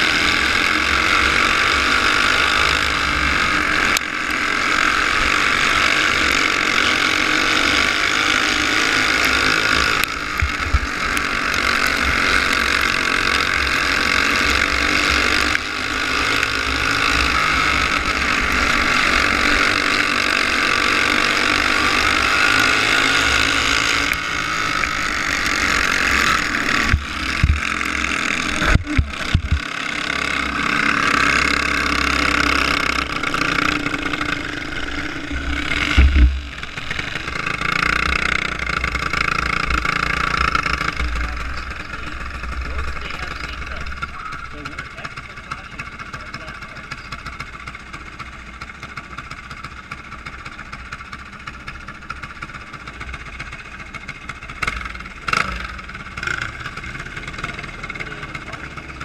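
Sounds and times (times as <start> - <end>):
kart engine revving: 0.0 - 59.0
sharp knocks: 26.8 - 27.8, 28.6 - 29.6, 35.8 - 36.5.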